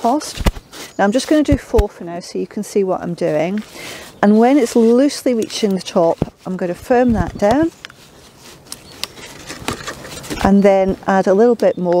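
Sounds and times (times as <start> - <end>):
compost rustling: 0.0 - 12.0.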